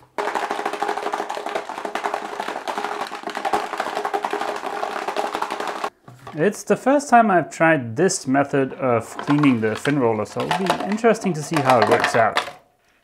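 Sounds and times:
metal roller rattling in plastic bottle: 0.0s - 6.4s, 9.0s - 12.6s.

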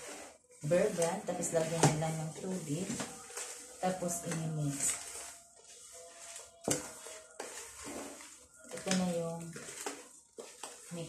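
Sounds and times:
hands mixing flour mixture: 0.0s - 11.0s.

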